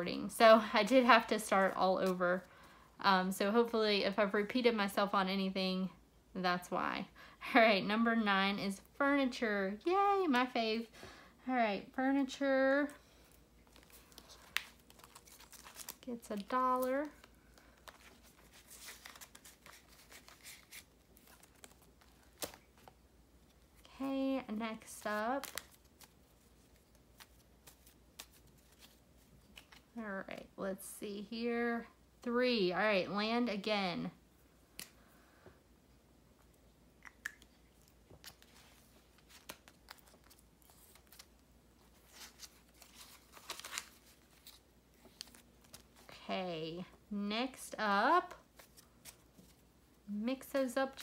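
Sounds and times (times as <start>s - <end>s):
paper money crinkling: 13.6s - 23.0s, 38.2s - 46.2s
plastic pouch rustling: 13.6s - 23.0s, 38.2s - 46.1s.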